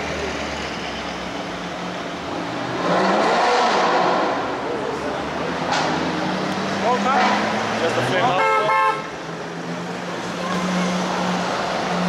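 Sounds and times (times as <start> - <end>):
car engine revving: 1.3 - 8.3.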